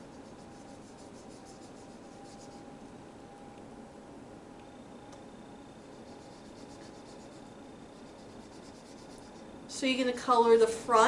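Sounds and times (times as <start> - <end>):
marker scribbling on wood: 0.0 - 2.6, 5.8 - 9.4.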